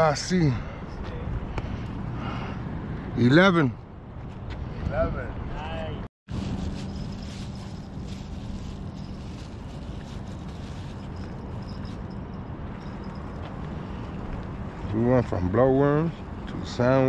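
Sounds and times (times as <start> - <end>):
distant engines: 0.0 - 17.0.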